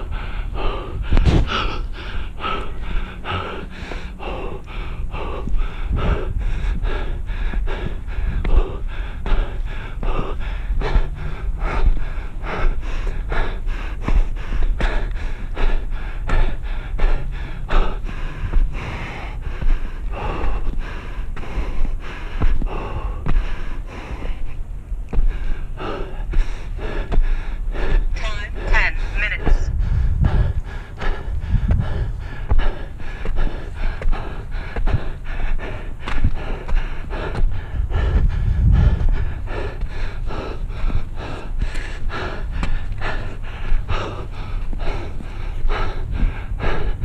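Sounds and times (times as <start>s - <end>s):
heavy rapid breathing: 0.0s - 47.0s
person panting hard: 0.0s - 47.0s
footsteps on wooden ties: 0.6s - 47.0s.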